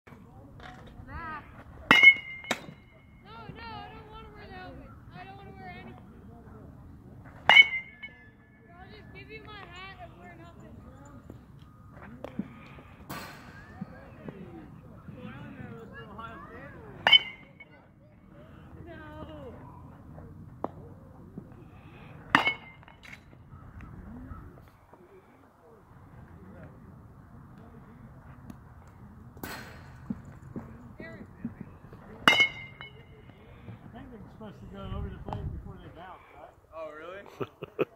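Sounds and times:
metal bat hitting ball ping: 1.9s - 3.0s, 7.4s - 8.4s, 17.0s - 17.7s, 22.3s - 23.3s, 32.2s - 33.0s.

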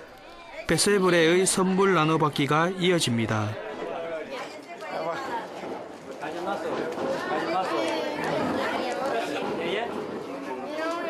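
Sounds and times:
overlapping chatter of people: 0.0s - 11.0s.

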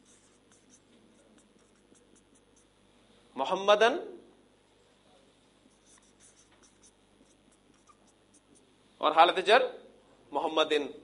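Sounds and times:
marker scratching on whiteboard: 0.0s - 2.8s, 5.7s - 8.7s.

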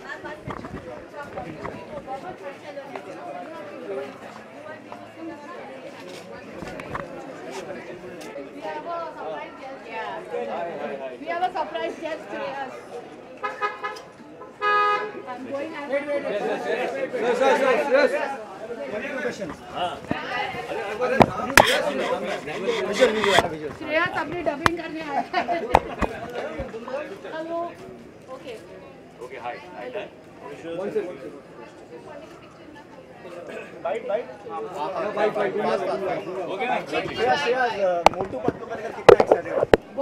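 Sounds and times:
crowd voices: 0.0s - 40.0s
people chattering: 0.0s - 40.0s.

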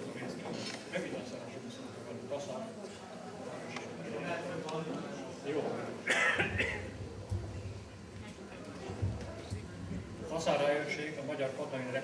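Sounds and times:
person coughing: 6.1s - 6.9s.

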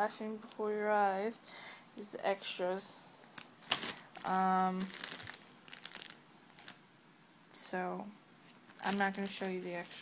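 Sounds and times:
plastic bags crinkling: 3.3s - 6.8s, 8.6s - 10.0s.

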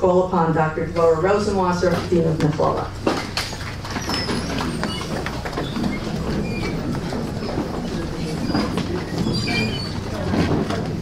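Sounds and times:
low rumbling room hum: 0.0s - 11.0s
faint squeaks: 3.9s - 10.3s.

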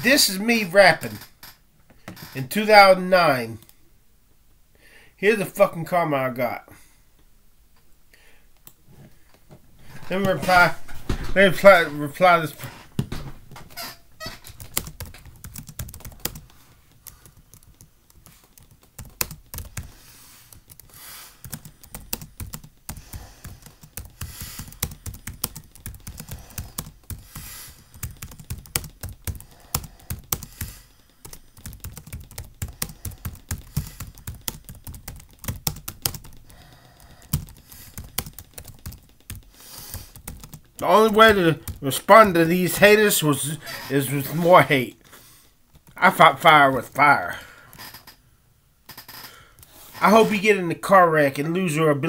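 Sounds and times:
keyboard typing clicks: 20.6s - 40.7s.

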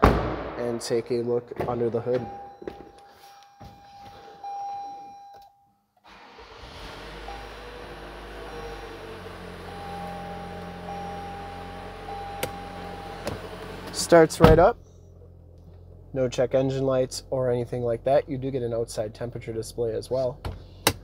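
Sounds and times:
dashboard warning chime: 2.0s - 5.9s, 8.4s - 9.0s, 9.6s - 13.2s
car engine starting and idling: 6.0s - 21.0s.

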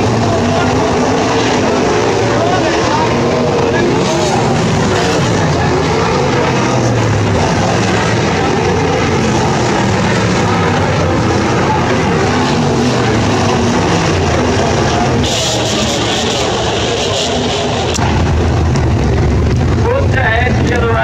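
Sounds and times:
racing car engines revving: 0.0s - 21.0s.

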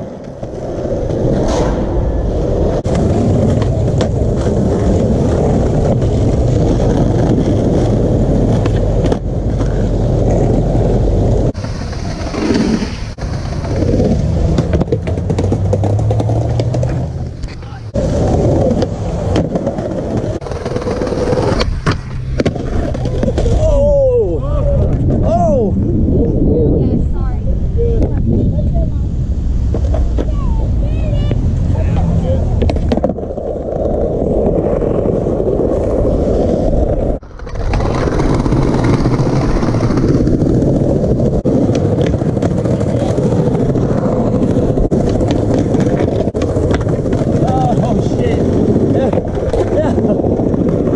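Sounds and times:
skateboard popping and landing: 0.0s - 23.9s, 31.6s - 50.9s
skateboard wheels rolling on stone: 0.0s - 50.9s.

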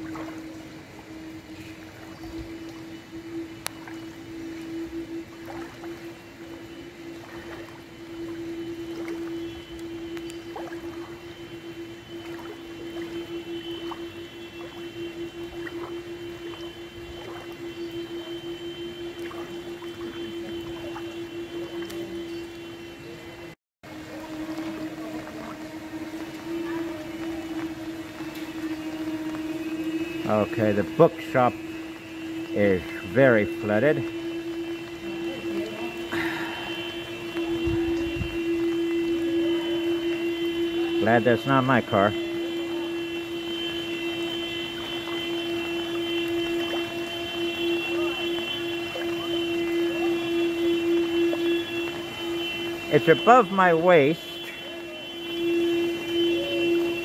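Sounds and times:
machine hum: 0.0s - 57.0s
water sloshing around legs: 0.0s - 57.0s.

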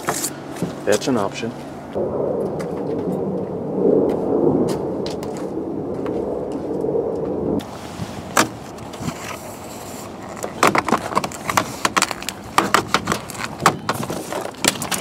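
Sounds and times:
loud steady rumble: 0.0s - 11.2s.

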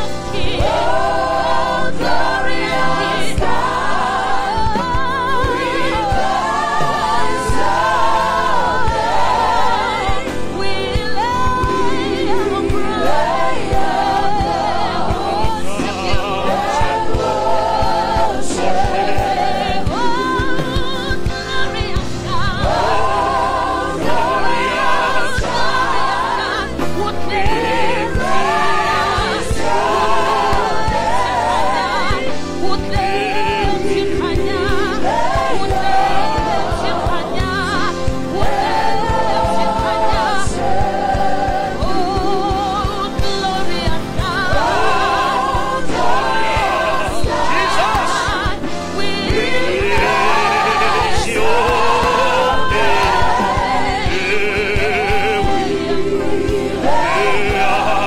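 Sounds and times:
band accompaniment: 0.0s - 58.0s
voices singing gospel song: 0.0s - 58.0s.

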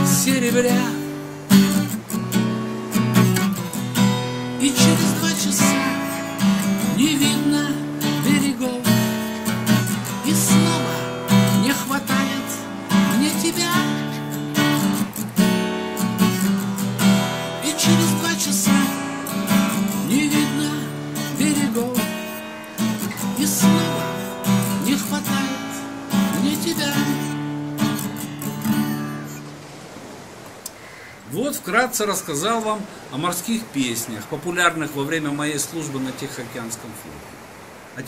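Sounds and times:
man singing: 0.0s - 1.2s, 4.4s - 14.3s, 17.0s - 27.5s
acoustic guitar strumming: 0.0s - 30.2s.

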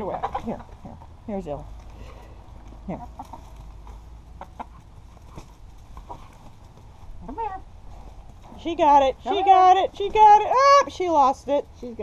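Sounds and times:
hens clucking: 0.0s - 12.0s.

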